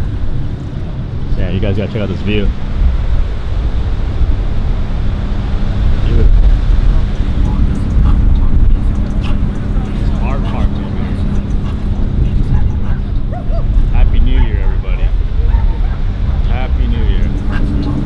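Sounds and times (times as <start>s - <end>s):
cars idling: 0.0s - 18.0s
people talking: 0.8s - 2.6s, 6.0s - 18.0s.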